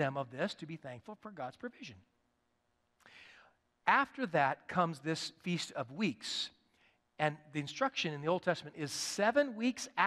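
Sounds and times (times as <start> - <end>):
man speaking: 0.0 - 2.1, 3.8 - 6.6, 7.2 - 10.0.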